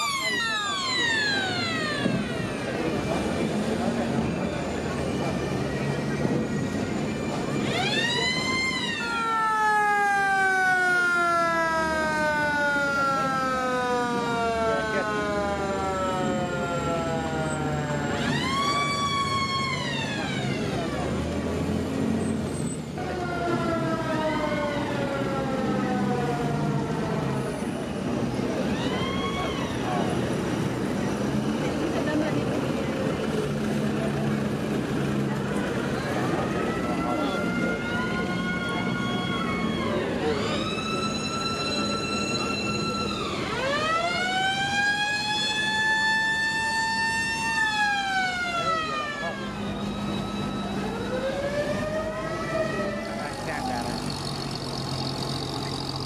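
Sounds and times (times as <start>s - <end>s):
mechanical siren wailing: 0.0s - 21.6s, 23.0s - 31.2s, 35.5s - 56.0s
jeep engines rumbling: 0.0s - 56.0s.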